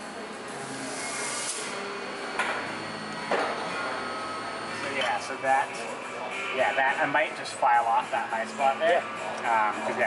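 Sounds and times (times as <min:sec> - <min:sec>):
workshop room noise: 0:00.0 - 0:10.0.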